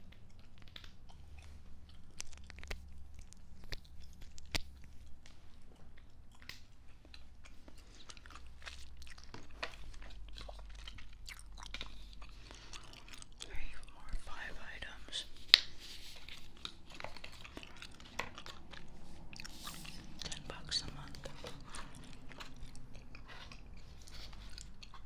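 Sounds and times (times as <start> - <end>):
gum chewing mouth clicks: 0.0 - 25.0.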